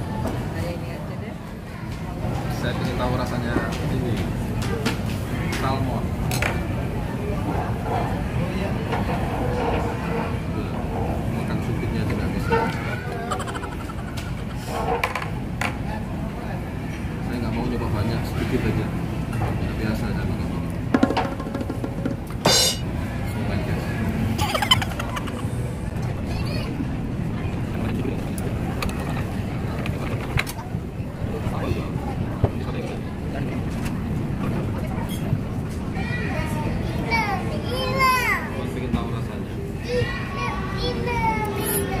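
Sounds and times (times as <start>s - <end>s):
murmur of voices: 0.0s - 42.0s.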